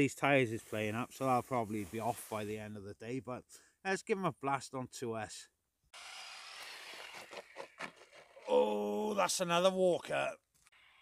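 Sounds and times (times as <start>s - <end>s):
toy truck on gravel hissing: 6.0s - 8.4s.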